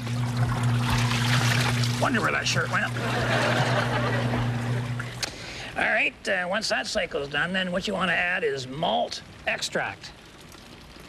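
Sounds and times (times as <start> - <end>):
water pouring and splashing in tub: 0.0 - 3.0, 9.3 - 11.0
washing machine hum: 0.0 - 5.7.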